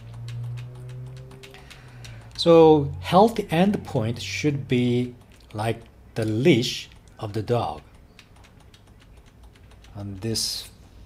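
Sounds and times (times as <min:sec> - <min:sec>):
keyboard keys clicking: 0:00.0 - 0:10.8.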